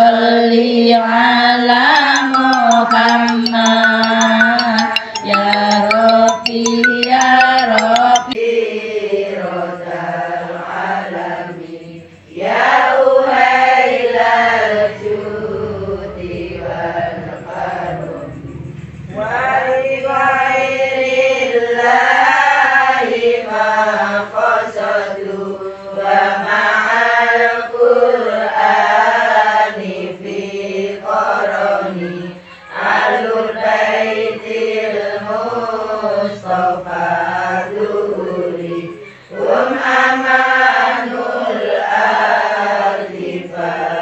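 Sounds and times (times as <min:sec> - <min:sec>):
girls chanting in unison: 0:19.5 - 0:44.0.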